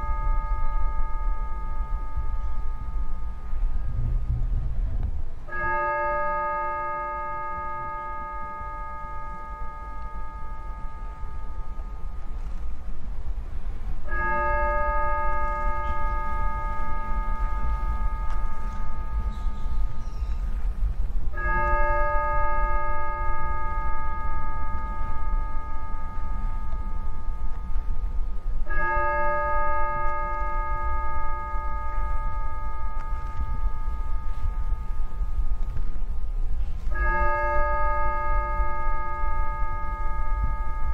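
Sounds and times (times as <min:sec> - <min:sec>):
steady low rumble: 0:00.0 - 0:40.9
bell tolling: 0:14.0 - 0:40.9.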